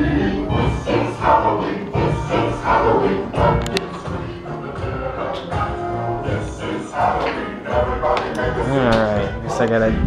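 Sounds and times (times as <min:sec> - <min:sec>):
music with group singing: 0:00.0 - 0:10.0.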